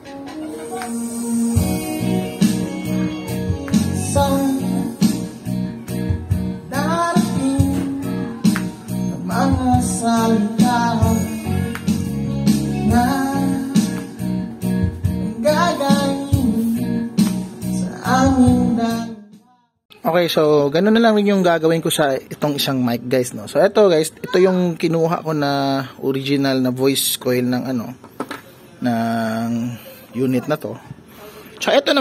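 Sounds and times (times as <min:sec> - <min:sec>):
recorded guitar and beat: 0:00.0 - 0:19.2
man singing through pa speaker: 0:00.9 - 0:05.4, 0:06.6 - 0:14.3, 0:15.2 - 0:19.4.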